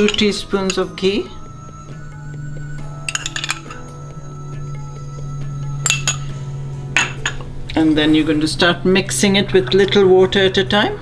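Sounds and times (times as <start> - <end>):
metal spoon clinking on glass: 0.0 - 1.0, 3.0 - 3.9, 5.8 - 6.3
soft background music: 0.0 - 11.0.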